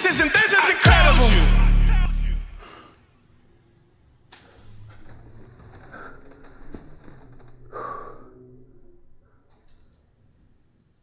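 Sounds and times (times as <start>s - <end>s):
loud breath out: 7.7s - 8.4s.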